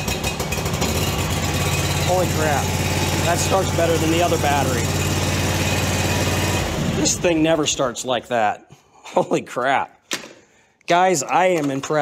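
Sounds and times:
mower engine running: 0.0s - 7.9s.

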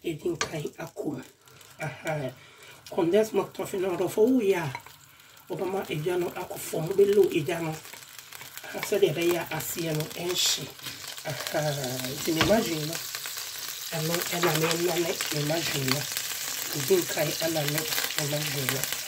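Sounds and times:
person talking: 0.0s - 4.8s, 5.5s - 7.8s, 8.6s - 13.0s, 13.9s - 16.1s, 16.7s - 18.9s
margarine sizzling in a pan: 0.0s - 19.0s
wooden spatula scraping pan: 14.2s - 15.8s.

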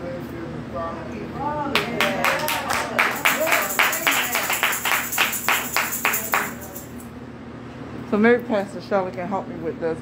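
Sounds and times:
hands clapping in rhythm: 1.8s - 6.9s.

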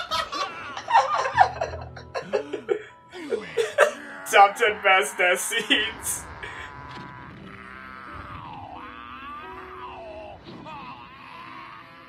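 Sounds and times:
man's anguished cry: 3.2s - 6.8s.

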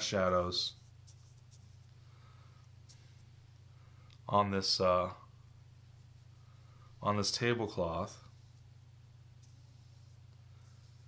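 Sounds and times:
steady low hum: 0.0s - 11.0s
paintbrush scratching on canvas: 0.7s - 2.0s, 8.2s - 8.8s, 9.4s - 11.0s.

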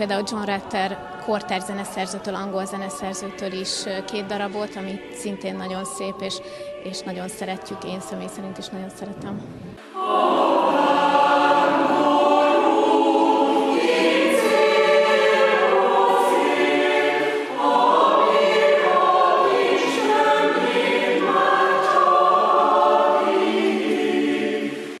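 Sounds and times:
mixed choir singing: 0.0s - 9.2s, 9.8s - 25.0s.

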